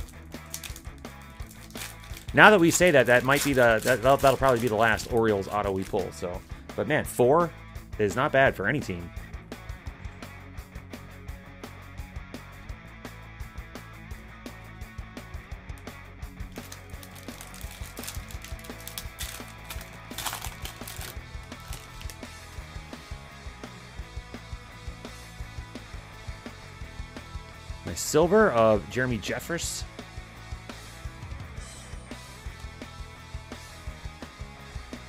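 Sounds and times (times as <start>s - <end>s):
trading cards flicked: 0.0s - 5.2s, 16.5s - 22.3s
foil pack tearing: 0.0s - 6.1s, 16.5s - 22.3s
background music: 0.0s - 35.0s.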